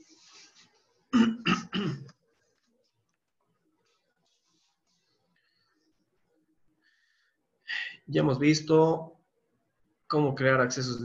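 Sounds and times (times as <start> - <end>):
man clearing his throat: 1.1 - 2.2.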